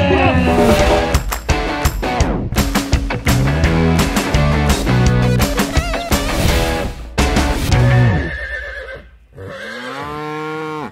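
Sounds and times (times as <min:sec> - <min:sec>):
horse whinnying: 0:08.0 - 0:10.9
cow mooing: 0:09.3 - 0:10.9.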